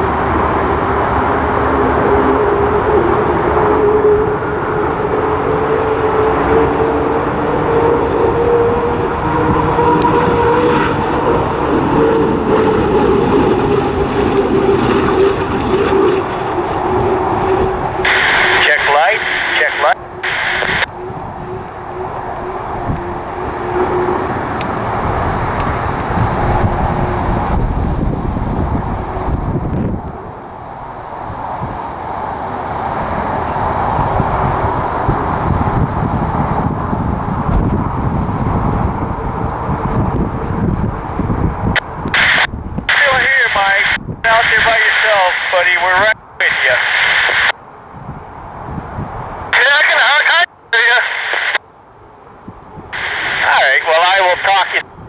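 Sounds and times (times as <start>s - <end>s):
boat turbine engine howling: 0.0s - 55.0s.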